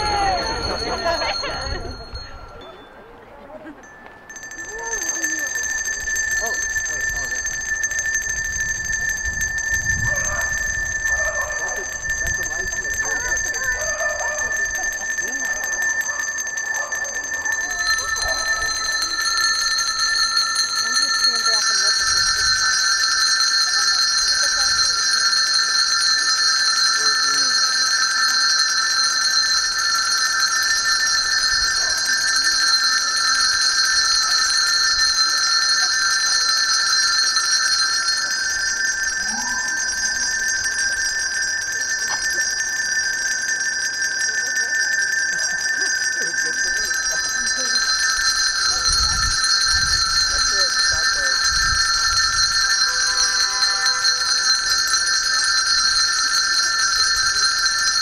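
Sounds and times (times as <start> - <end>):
murmur of voices: 0.0 - 9.6, 11.5 - 58.0
handbells ringing: 0.0 - 58.0.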